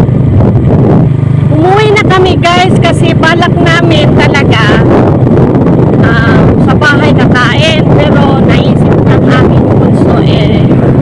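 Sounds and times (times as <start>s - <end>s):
vehicle engine drone: 0.0s - 11.0s
wind buffeting microphone: 0.0s - 11.0s.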